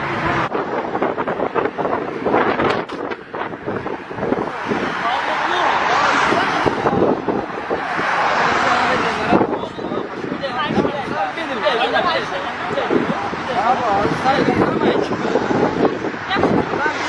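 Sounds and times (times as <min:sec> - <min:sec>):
rushing noise: 0:00.0 - 0:17.0
indistinct voices: 0:03.6 - 0:17.0.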